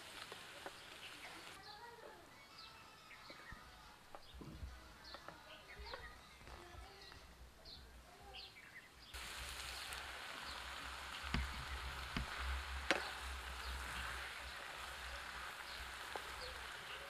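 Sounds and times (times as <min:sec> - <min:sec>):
vegetables sizzling in a frying pan: 0:00.0 - 0:02.1, 0:09.1 - 0:17.0
wooden spatula knocking pan: 0:11.2 - 0:16.7.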